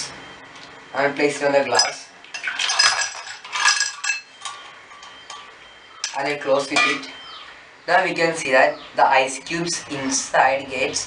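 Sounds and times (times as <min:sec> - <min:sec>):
ice cubes clinking: 0:01.7 - 0:05.4.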